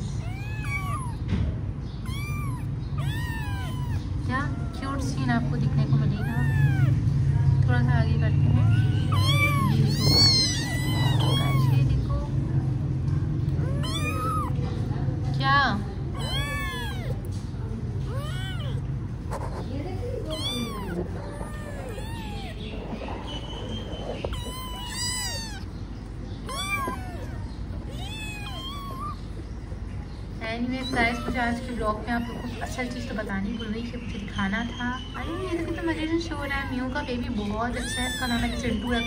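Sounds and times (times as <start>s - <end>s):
kittens mewing: 0.0s - 1.4s, 2.0s - 7.4s, 8.2s - 12.4s, 13.2s - 14.9s, 15.8s - 39.0s.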